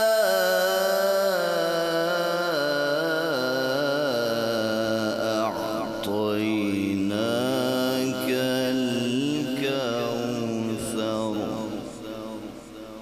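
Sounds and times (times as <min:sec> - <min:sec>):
man reciting melodically: 0:00.0 - 0:13.0.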